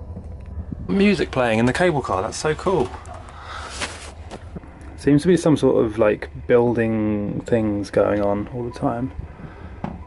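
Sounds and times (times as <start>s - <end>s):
cable car hum and rushing: 0.0s - 3.4s.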